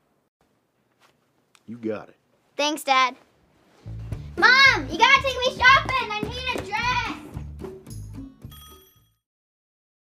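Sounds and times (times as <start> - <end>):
bright bell-like chime: 7.9 - 9.3.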